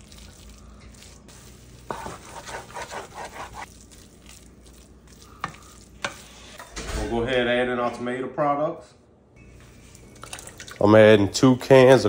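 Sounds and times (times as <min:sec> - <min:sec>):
wooden spoon scraping a pot: 0:01.7 - 0:03.7, 0:05.1 - 0:06.7.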